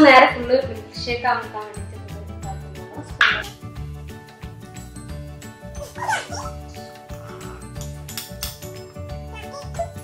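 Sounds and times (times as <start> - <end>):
background music with steady beat: 0.0 - 10.0
dog whining: 5.8 - 6.6, 9.3 - 10.0.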